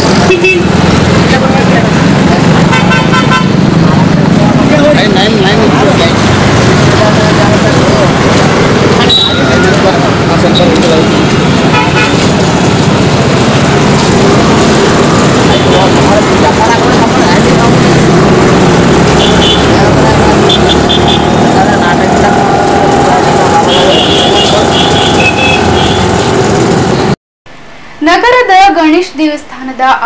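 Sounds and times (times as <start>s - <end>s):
motor traffic running: 0.0s - 27.2s
vehicle horn toots: 0.2s - 0.8s, 2.7s - 3.6s, 9.0s - 9.9s, 11.7s - 12.4s, 19.2s - 21.4s, 23.6s - 26.3s
people talking: 0.2s - 3.2s, 3.8s - 6.2s, 6.8s - 11.2s, 15.4s - 18.4s, 19.2s - 25.3s, 28.0s - 30.0s.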